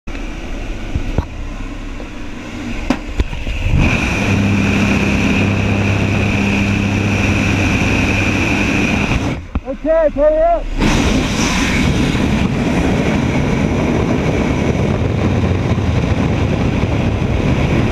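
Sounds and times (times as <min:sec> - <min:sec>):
propeller engines running: 0:00.1 - 0:17.9
rushing air: 0:00.1 - 0:17.9
person speaking: 0:09.6 - 0:10.7
wind on the microphone: 0:10.3 - 0:17.9.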